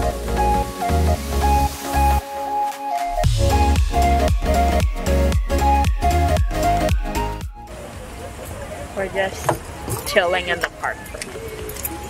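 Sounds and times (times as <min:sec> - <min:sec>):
background music with steady beat: 0:00.0 - 0:08.2.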